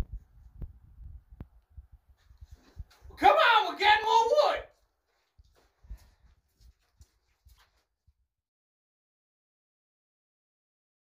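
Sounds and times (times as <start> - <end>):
soft footsteps: 4.7 - 8.0.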